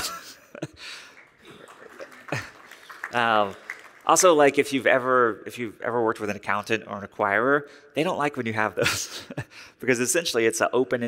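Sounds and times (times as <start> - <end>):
quiet laughter: 1.4 - 2.8.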